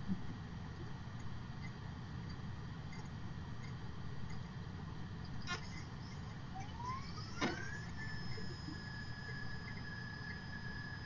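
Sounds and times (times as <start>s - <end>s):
optical drive whine spinning up: 0.0s - 11.0s.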